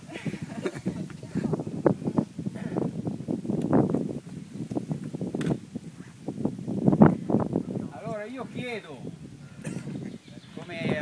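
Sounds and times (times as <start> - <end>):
people talking indistinctly: 7.6 - 11.0.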